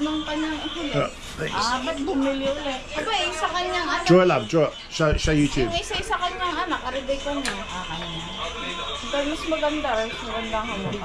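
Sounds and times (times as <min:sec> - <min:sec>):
tv background music: 0:00.0 - 0:11.0
tv voices: 0:00.0 - 0:11.0.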